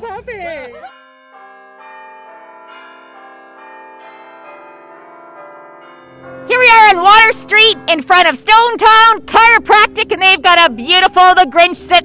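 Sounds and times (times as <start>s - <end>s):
bells ringing a slow tune: 0.5s - 11.1s.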